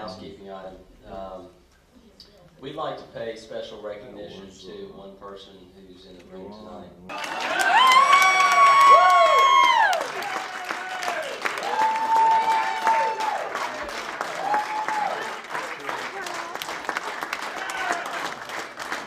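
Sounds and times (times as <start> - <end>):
audience applauding: 7.1 - 19.0.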